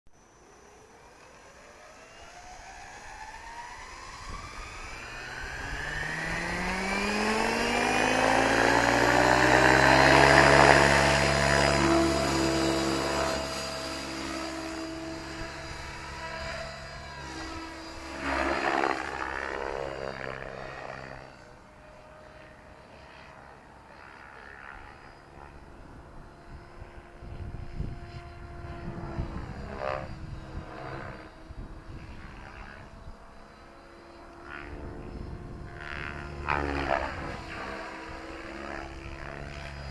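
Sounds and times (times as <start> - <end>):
rc helicopter rotor whine: 0.2 - 39.9.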